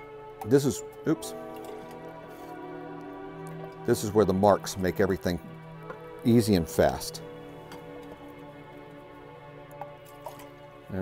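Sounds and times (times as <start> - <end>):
soft background music: 0.0 - 11.0
liquid dripping: 9.6 - 10.7.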